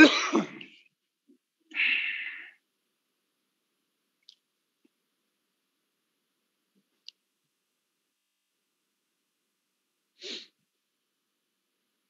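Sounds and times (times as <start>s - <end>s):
person sneezing: 0.0s - 0.7s, 10.2s - 10.5s.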